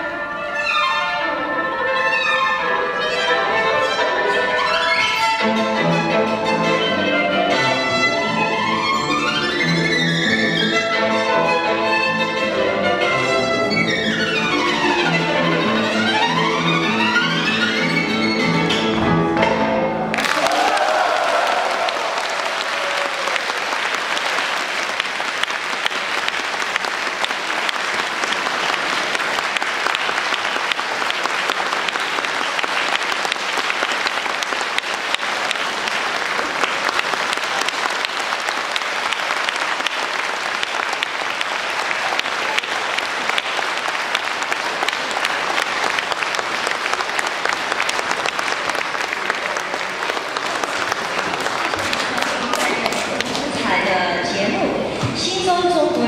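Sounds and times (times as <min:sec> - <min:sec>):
audience applauding: 0:20.0 - 0:53.9.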